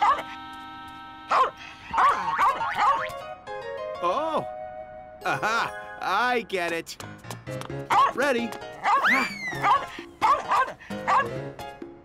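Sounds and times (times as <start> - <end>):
cartoon background music chord: 0.0 - 6.5
cartoon vocal sounds: 1.9 - 3.0.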